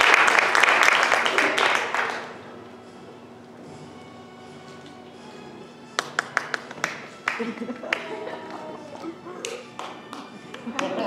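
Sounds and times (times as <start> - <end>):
soft hall background: 0.0 - 11.0.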